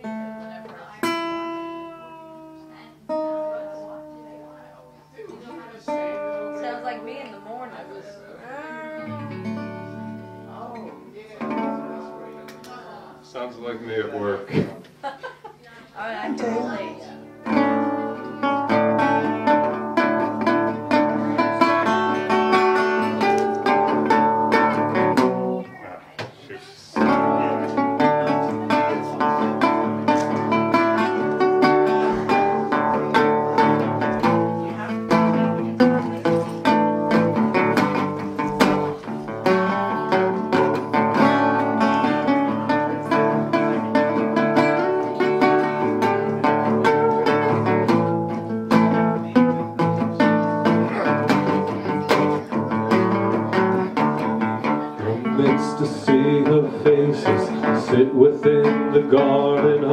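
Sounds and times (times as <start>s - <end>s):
fingerpicked resonator guitar: 0.0s - 15.0s, 16.0s - 26.0s, 26.8s - 59.9s.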